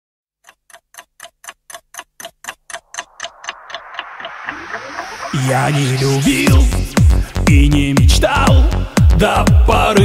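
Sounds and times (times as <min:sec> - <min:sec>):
clock-like ticking: 0:00.4 - 0:07.8
music: 0:04.2 - 0:10.0.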